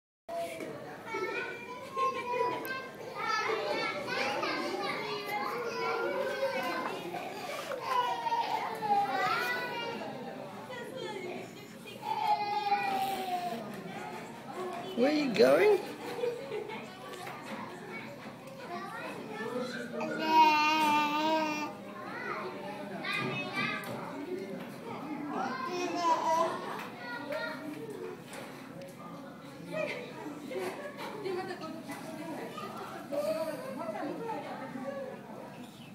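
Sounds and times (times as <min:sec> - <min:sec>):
young children chattering: 0:00.3 - 0:35.9.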